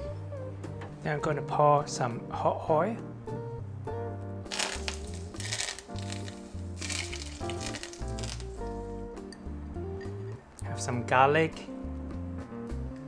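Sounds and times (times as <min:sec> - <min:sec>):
background guitar music: 0:00.0 - 0:13.0
hot oil sizzling: 0:04.5 - 0:08.8.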